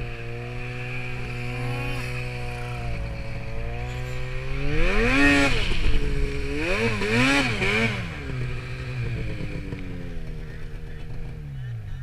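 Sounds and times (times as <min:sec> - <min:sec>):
snowmobile engine running: 0:00.0 - 0:12.0.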